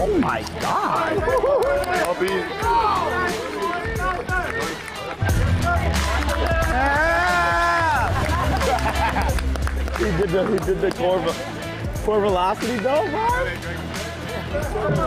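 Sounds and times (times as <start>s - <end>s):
music with heavy bass and beat: 0.0s - 15.0s
young men shouting and cheering: 0.0s - 15.0s.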